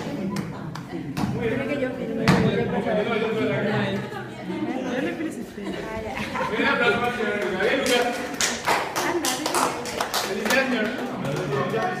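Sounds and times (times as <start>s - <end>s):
small group clapping: 0.0s - 1.3s, 6.9s - 12.0s.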